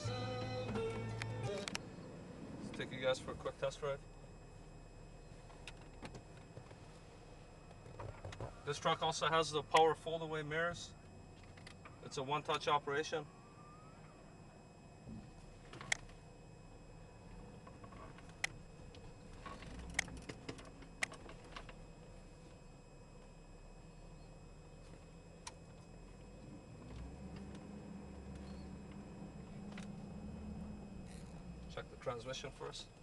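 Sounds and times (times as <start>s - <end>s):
truck engine running: 0.0s - 12.2s, 13.3s - 33.0s.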